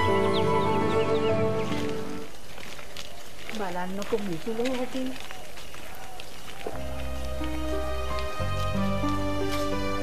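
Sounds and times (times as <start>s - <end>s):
soft music with low held notes: 0.0s - 2.3s, 6.6s - 10.0s
footsteps on dirt path: 0.0s - 10.0s
outdoor background noise: 0.0s - 10.0s
woman's voice: 3.5s - 5.2s.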